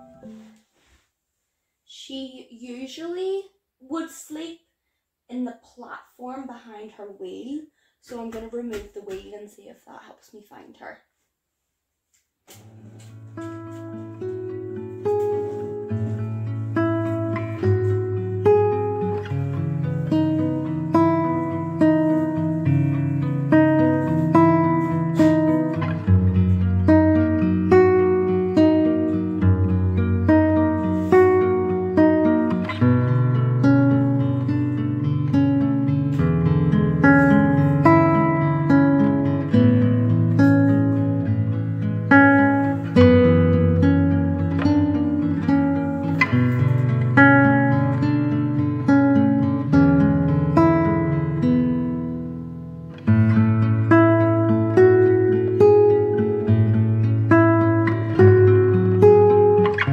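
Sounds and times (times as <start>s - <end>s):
acoustic guitar strumming: 0.0s - 0.8s, 12.5s - 59.9s.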